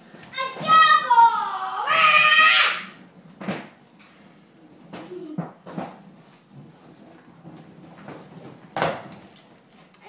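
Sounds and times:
clatter on hardwood floor: 4.9s - 9.9s.

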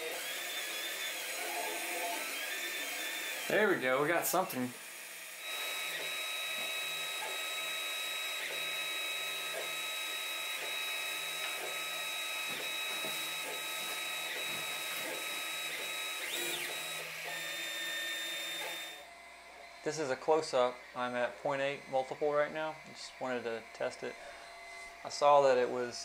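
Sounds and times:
stepper motors whining: 0.0s - 25.5s.

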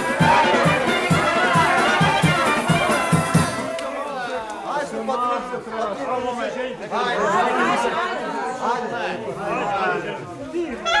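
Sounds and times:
group chattering: 0.0s - 11.0s.

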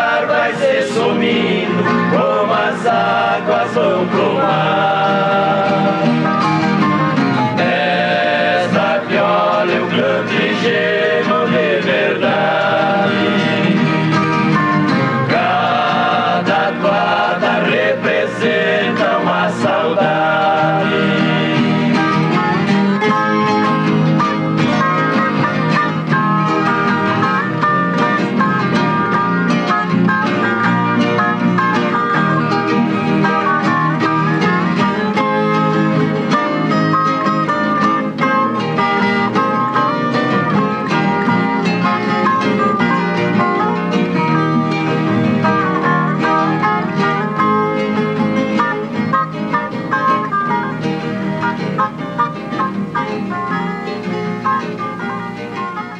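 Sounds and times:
ensemble of plucked guitars: 0.0s - 55.9s.

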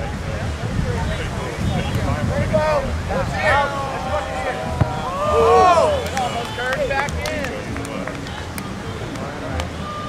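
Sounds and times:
players calling out: 3.0s - 8.9s.

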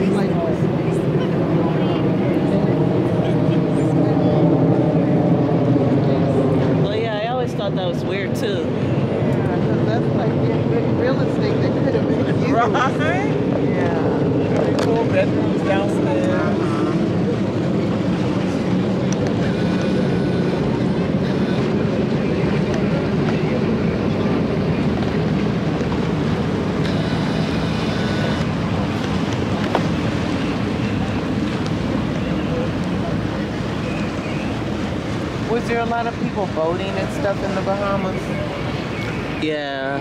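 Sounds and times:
boat engine droning: 0.0s - 40.0s
water wash: 0.0s - 40.0s.

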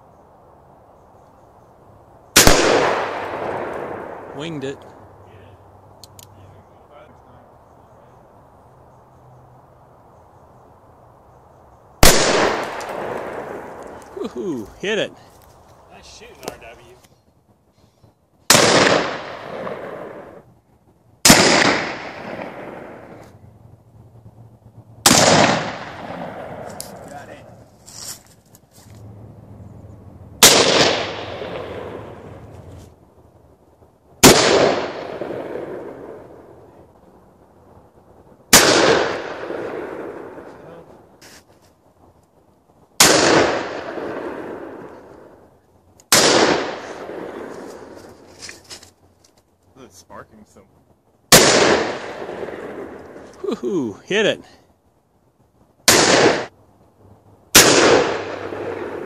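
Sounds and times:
revolver shots echoing: 12.0s - 13.7s, 18.5s - 20.2s, 21.3s - 23.2s, 25.1s - 26.7s, 30.4s - 32.1s, 38.6s - 40.2s, 43.0s - 44.4s, 46.1s - 47.4s, 51.3s - 52.5s, 55.9s - 56.5s, 57.6s - 59.0s.

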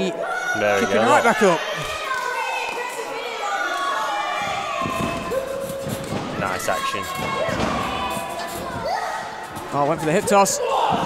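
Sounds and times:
crowd voices in a hall: 0.0s - 11.0s.

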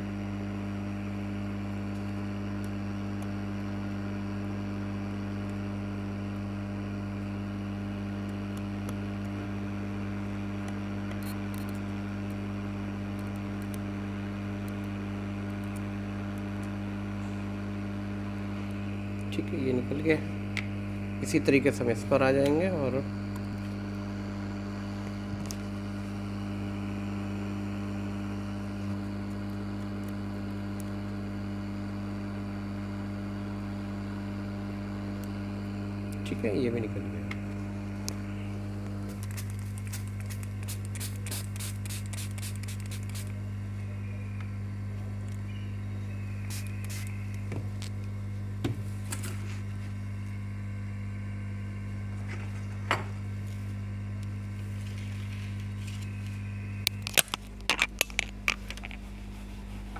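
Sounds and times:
electrical mains hum: 0.0s - 59.9s
hot air gun blowing: 40.6s - 43.3s, 46.4s - 47.2s.

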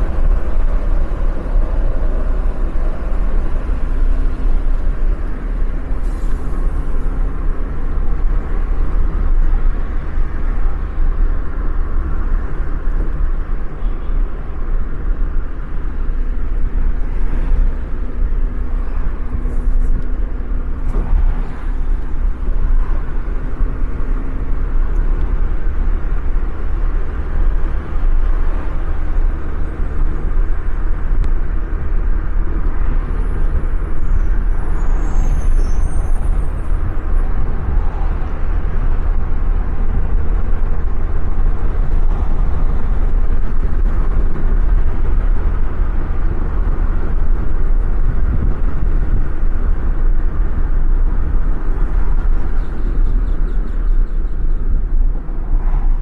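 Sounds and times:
car road noise: 0.0s - 56.0s.

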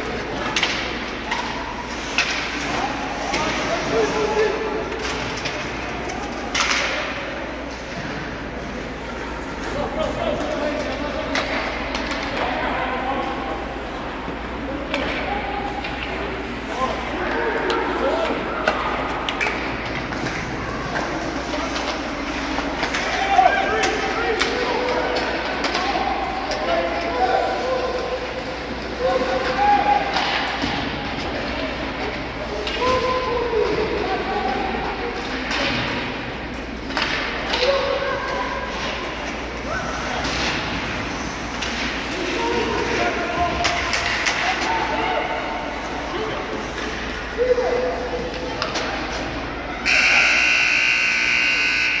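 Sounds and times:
hockey sticks clacking on ice: 0.0s - 8.9s, 9.6s - 12.6s, 17.2s - 45.0s, 48.2s - 49.4s
scoreboard buzzer long blast: 49.8s - 52.0s.

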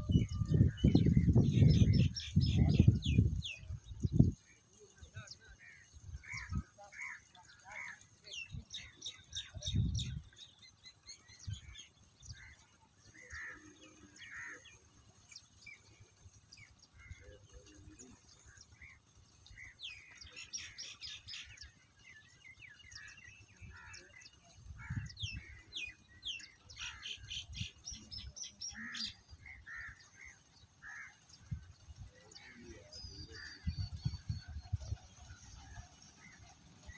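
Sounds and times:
small birds chirping: 0.0s - 36.9s.

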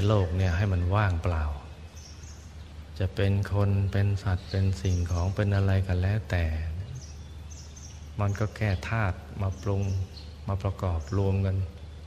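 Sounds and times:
man speaking calmly: 0.0s - 1.9s, 2.6s - 7.3s, 8.1s - 12.0s
background hiss and hum: 0.0s - 12.0s
faint bird chirps: 0.0s - 12.0s.

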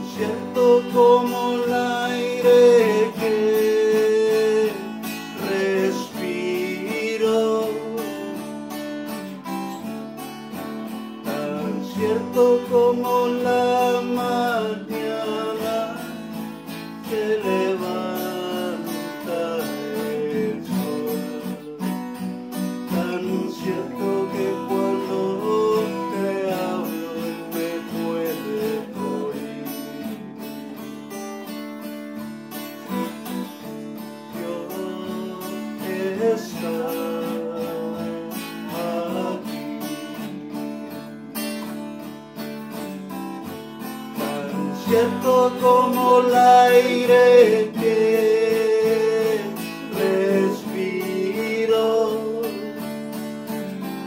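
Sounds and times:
acoustic guitar strumming chords: 0.0s - 54.0s.

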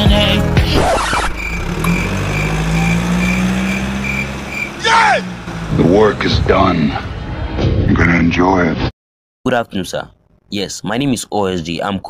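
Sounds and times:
car engine running: 0.0s - 7.7s.

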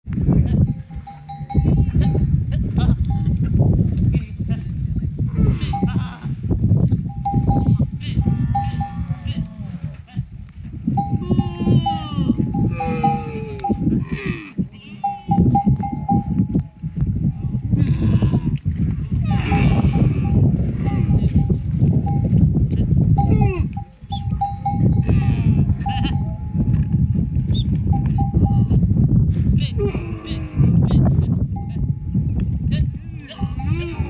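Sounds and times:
camel bell clinking: 0.6s - 2.3s, 7.1s - 9.1s, 10.9s - 14.0s, 15.0s - 16.9s, 19.5s - 22.4s, 23.2s - 28.7s, 31.5s - 32.3s.

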